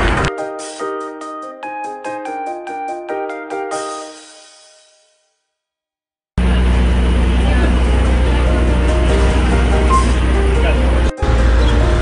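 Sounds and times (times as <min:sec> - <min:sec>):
low traffic rumble: 0:06.4 - 0:12.0.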